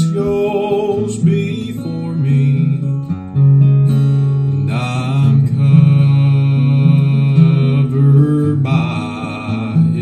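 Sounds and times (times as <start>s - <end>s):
man singing: 0.0s - 3.2s, 4.5s - 10.0s
strummed acoustic guitar: 0.0s - 10.0s.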